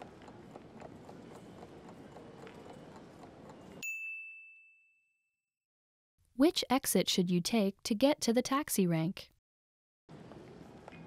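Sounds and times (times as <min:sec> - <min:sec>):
bright bell ding: 0:03.8 - 0:05.3.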